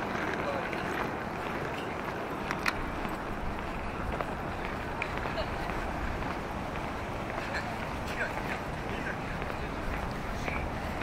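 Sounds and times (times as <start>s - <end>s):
distant indistinct voices: 0.0s - 11.0s
footsteps on pavement: 0.0s - 11.0s
low city rumble: 0.0s - 11.0s.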